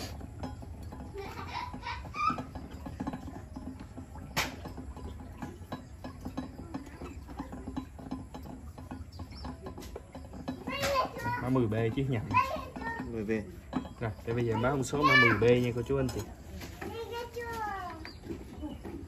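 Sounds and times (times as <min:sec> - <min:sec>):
metal turntable clicking and rattling: 0:00.0 - 0:19.0.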